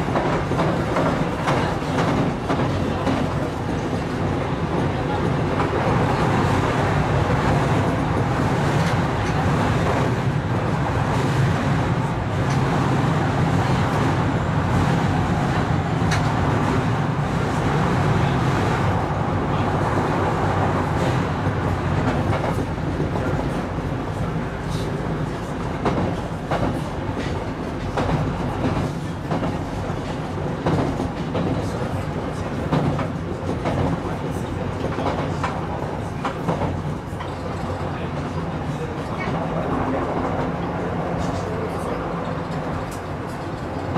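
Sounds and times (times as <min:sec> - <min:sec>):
train wheels rumbling on rails: 0:00.0 - 0:43.9.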